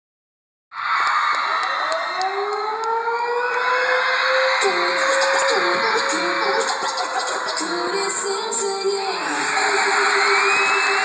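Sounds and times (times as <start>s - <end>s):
crowd screaming and cheering: 0.7s - 11.0s.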